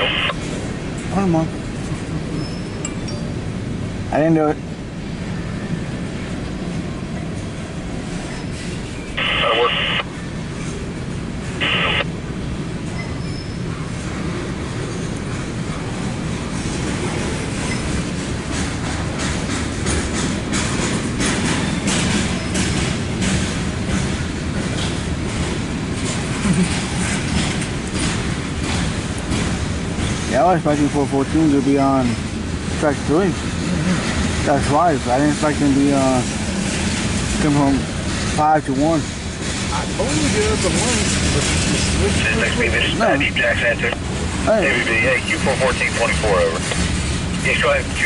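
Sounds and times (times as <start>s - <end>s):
scanner radio noise bursts: 0.0s - 0.4s, 9.2s - 10.1s, 11.6s - 12.1s, 44.6s - 46.6s
freight train rumbling past: 0.0s - 48.0s
rail-joint clicks: 2.4s - 3.3s, 16.8s - 30.3s.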